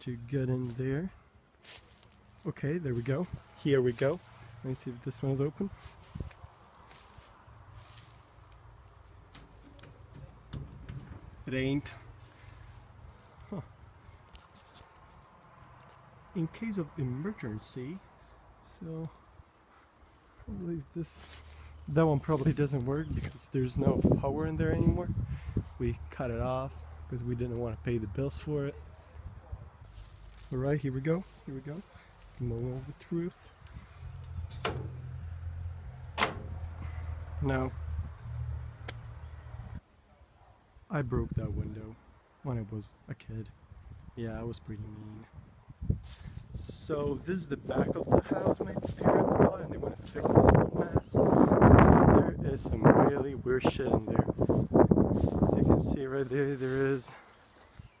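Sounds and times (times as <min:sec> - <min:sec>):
low steady rumble: 0:07.5 - 0:14.1
metal door handle click: 0:09.3 - 0:11.4, 0:34.5 - 0:35.0, 0:36.2 - 0:36.6.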